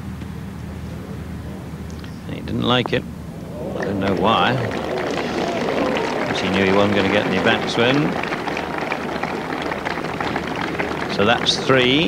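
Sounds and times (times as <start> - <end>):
crowd applause: 3.3 - 12.0.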